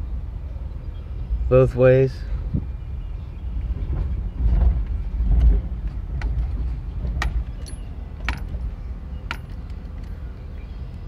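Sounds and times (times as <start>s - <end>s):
car road and engine rumble: 0.0s - 11.0s
metallic clicks and jingles: 7.2s - 10.2s.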